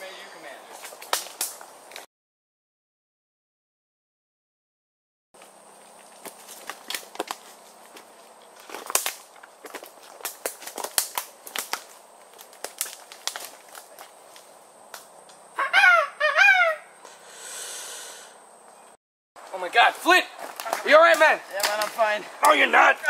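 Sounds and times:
sticks snapping underfoot: 0.8s - 2.1s, 6.2s - 15.4s, 20.5s - 22.6s
wordless shouts: 19.6s - 23.0s.

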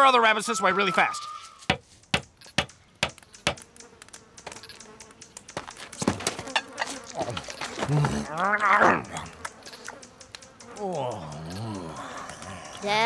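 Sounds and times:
faint steady buzz: 1.9s - 13.0s
campfire crackling and popping: 2.0s - 13.0s.

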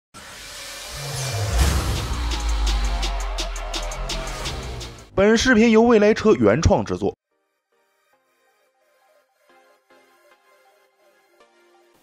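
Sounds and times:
rising music swell: 0.2s - 5.1s
deep bass hit: 1.0s - 5.1s.

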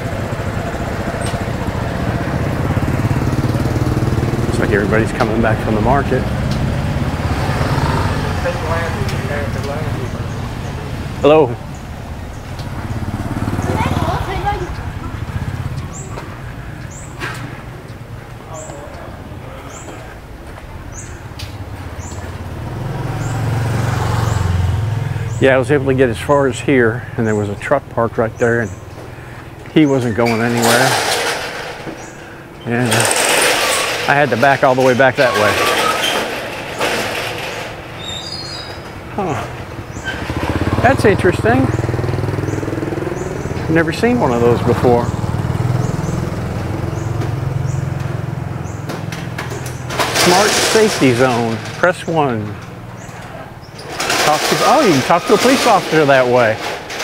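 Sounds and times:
bird chirping: 0.0s - 31.0s, 31.8s - 33.1s, 35.2s - 56.0s
motor scooter passing: 0.0s - 57.0s.

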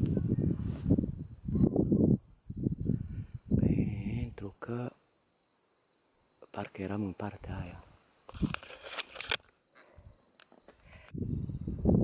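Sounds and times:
rough rustling on microphone: 0.0s - 1.2s.

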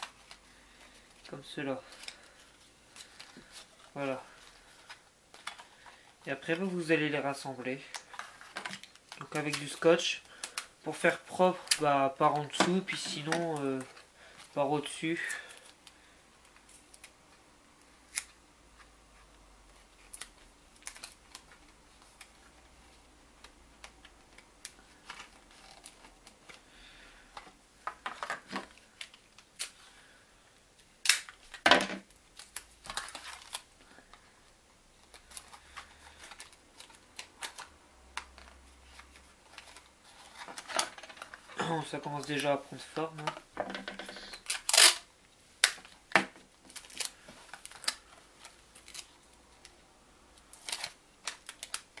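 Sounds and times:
cardboard and tape clicks and rustles: 0.0s - 6.6s, 7.8s - 17.1s, 20.0s - 22.7s, 23.4s - 26.7s, 30.8s - 34.2s, 35.0s - 41.5s, 42.2s - 49.8s, 50.4s - 52.0s.

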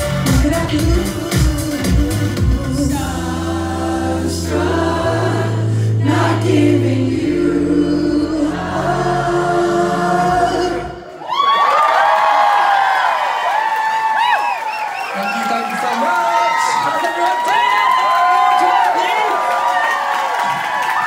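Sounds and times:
live pop music with singing: 0.0s - 11.1s
audience cheering and screaming: 11.0s - 21.0s.

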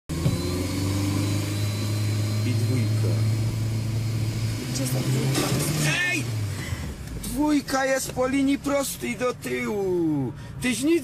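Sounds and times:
car engine hum from inside: 0.1s - 11.0s.

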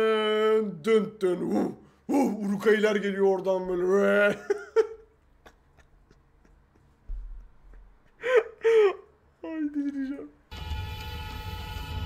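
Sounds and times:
person laughing: 4.1s - 10.3s.

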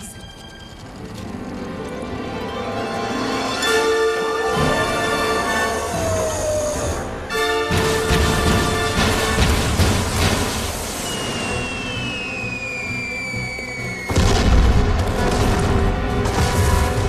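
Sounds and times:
film score music: 0.0s - 17.0s
falling whistles: 3.8s - 7.6s, 10.6s - 14.4s
loud explosion boom: 14.1s - 17.0s.

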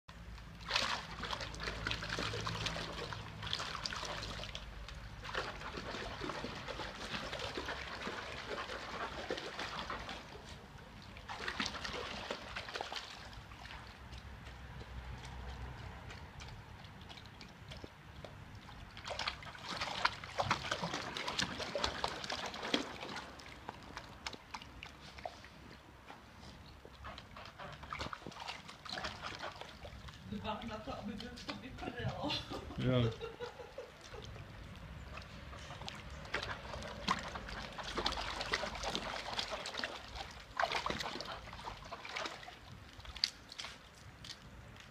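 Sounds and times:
dog splashing water in a tub: 0.1s - 44.9s.

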